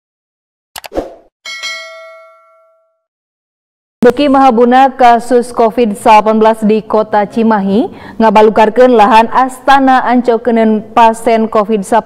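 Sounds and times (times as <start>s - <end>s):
notification bell ding: 1.5s - 3.0s.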